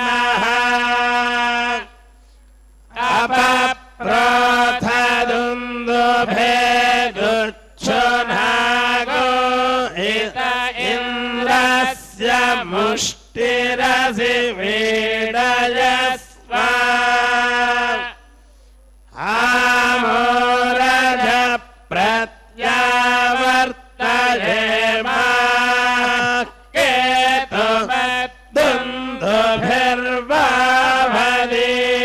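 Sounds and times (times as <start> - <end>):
mantras chanted: 0.0 - 32.0.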